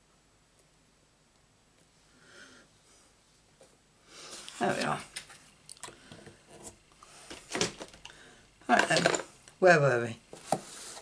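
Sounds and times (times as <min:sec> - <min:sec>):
person speaking: 0:04.5 - 0:05.2, 0:08.6 - 0:10.3.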